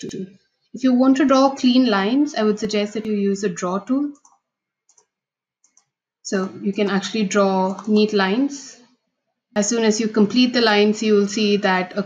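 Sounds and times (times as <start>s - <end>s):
faint mouse clicks: 4.1s - 6.0s.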